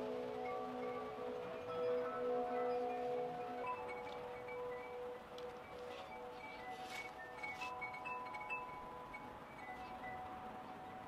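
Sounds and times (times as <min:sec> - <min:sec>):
chimes ringing: 0:00.0 - 0:11.0.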